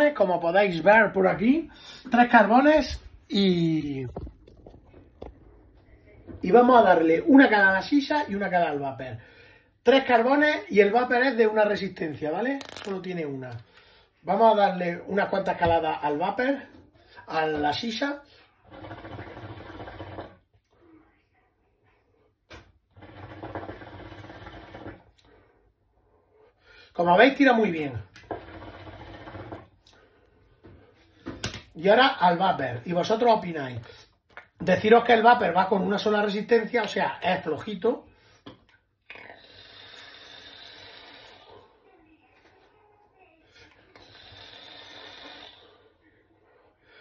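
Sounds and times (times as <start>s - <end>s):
air hissing through vape: 39.3s - 41.5s, 43.9s - 45.9s.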